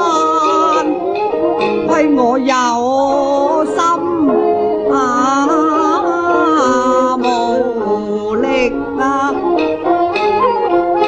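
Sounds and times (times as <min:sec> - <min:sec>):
opera music with sliding notes: 0:00.0 - 0:11.0
wavering vibrato line: 0:00.0 - 0:11.0.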